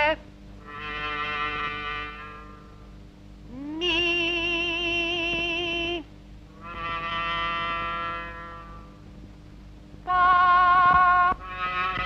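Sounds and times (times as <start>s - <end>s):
held brass note: 6.6s - 8.9s.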